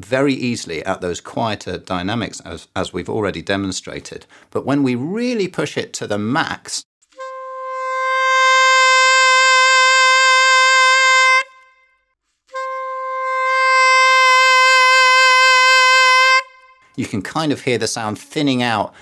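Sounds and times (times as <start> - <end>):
saxophone holding long note: 7.2 - 11.8, 12.5 - 16.9.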